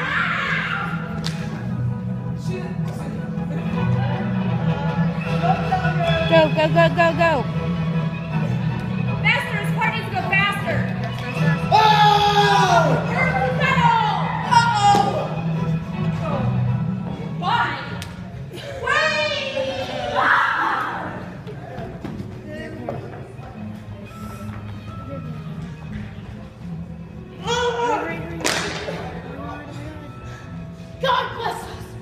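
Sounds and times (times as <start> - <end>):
person yelling: 11.7 - 15.3
young voices cheering: 18.6 - 21.4.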